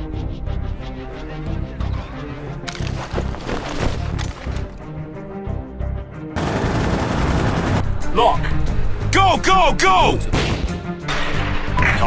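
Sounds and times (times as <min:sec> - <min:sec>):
background music: 0:00.0 - 0:12.0
rapid rifle gunfire: 0:06.4 - 0:07.8.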